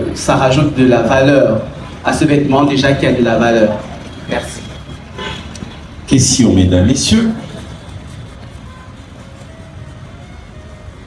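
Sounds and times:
distant music: 0.0 - 11.0.

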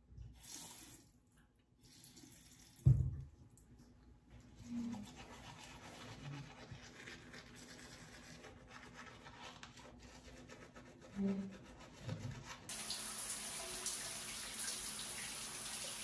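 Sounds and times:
toothbrush scrubbing teeth: 4.5 - 12.7.

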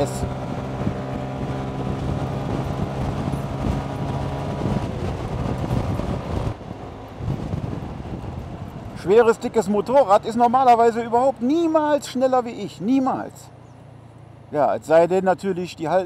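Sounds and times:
scooter engine running: 0.0 - 8.8
wind noise: 0.0 - 9.9.

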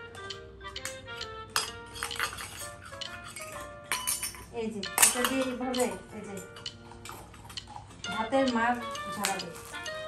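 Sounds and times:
toy pots clinking: 0.2 - 10.0.

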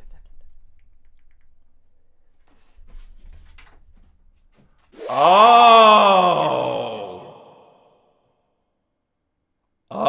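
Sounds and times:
person exclaiming oh: 5.0 - 7.7.

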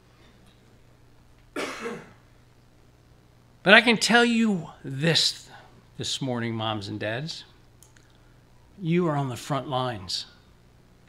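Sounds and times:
faint low hum: 0.0 - 11.0
man clearing his throat: 1.6 - 2.2.

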